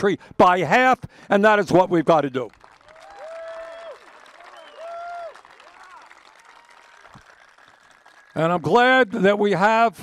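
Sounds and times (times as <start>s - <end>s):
crowd applauding and cheering: 2.2s - 9.3s
long whoops: 2.9s - 7.4s.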